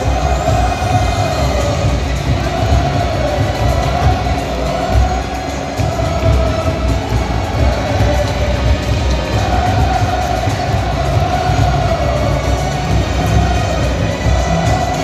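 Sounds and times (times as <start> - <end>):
crowd chanting in unison: 0.0 - 15.0
drum beat: 0.0 - 15.0.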